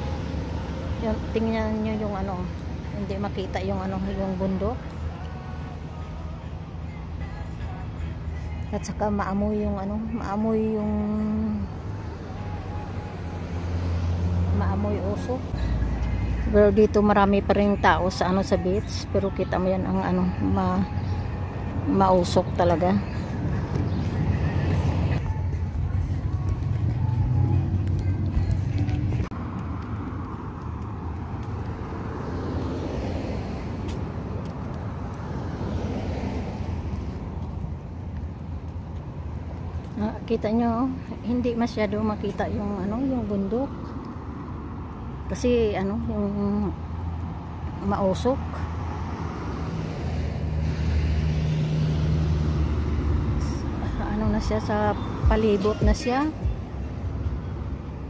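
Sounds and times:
low traffic rumble: 0.0 - 58.0
passing vehicle engine hum: 0.0 - 58.0
hiss of passing cars: 31.6 - 34.3, 48.5 - 54.0.

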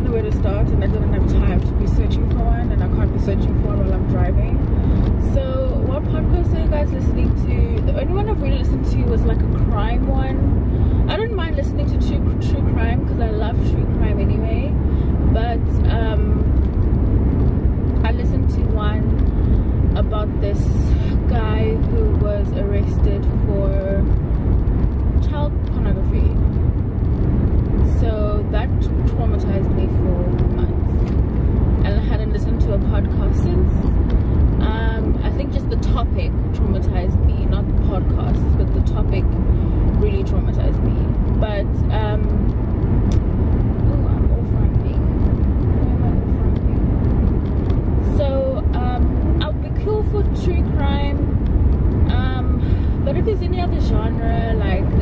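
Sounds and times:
woman talking: 0.0 - 16.6, 18.0 - 24.1, 25.2 - 26.5, 27.8 - 31.2, 31.8 - 34.0, 34.6 - 42.5, 43.8 - 45.1, 45.7 - 46.8, 48.0 - 51.4, 52.0 - 55.0
car cabin road and engine rumble: 0.0 - 55.0.

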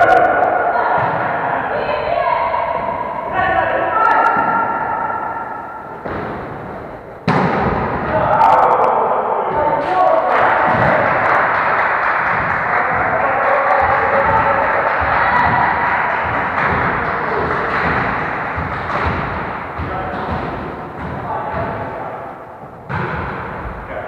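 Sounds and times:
sports hall din: 0.0 - 24.0
volleyball being hit: 4.3 - 8.3, 10.5 - 11.2, 12.3 - 23.7.

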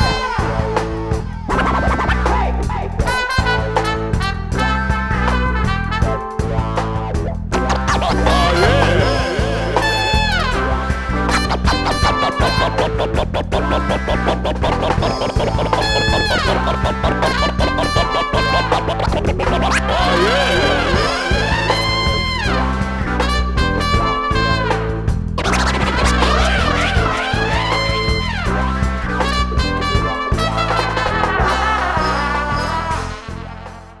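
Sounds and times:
live band music: 0.0 - 34.0
turntable scratching: 7.6 - 10.6, 11.3 - 21.5, 25.4 - 28.1.

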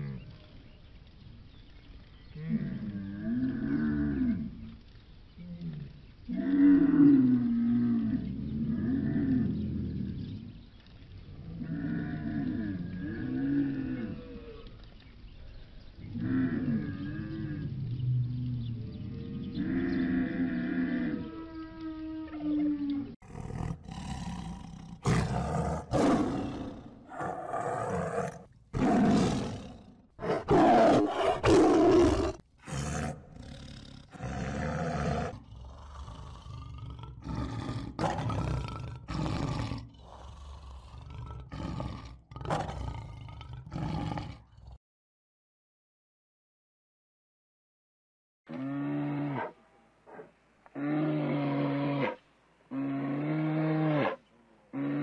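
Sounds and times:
leopards growling and roaring: 16.0 - 44.8, 48.5 - 55.0
camel groaning and bellowing: 19.5 - 44.7, 48.5 - 55.0.

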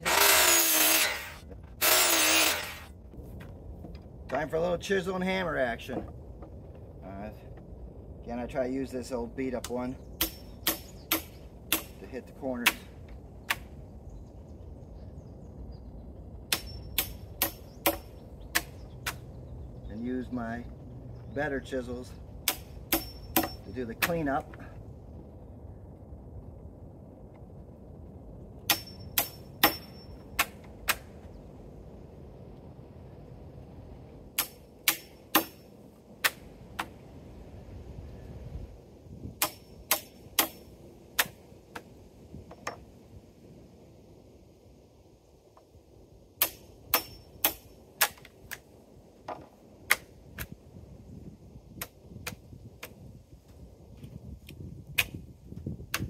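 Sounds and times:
metallic ring: 23.0 - 23.7, 28.7 - 30.2.

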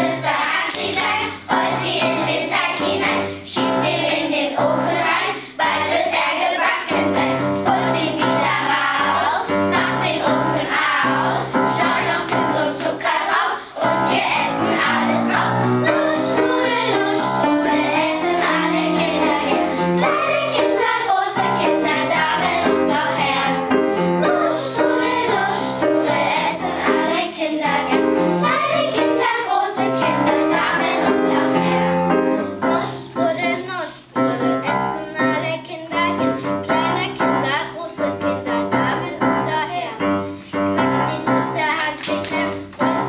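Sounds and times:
children's choir singing: 0.0 - 43.0
piano accompaniment: 0.0 - 43.0.

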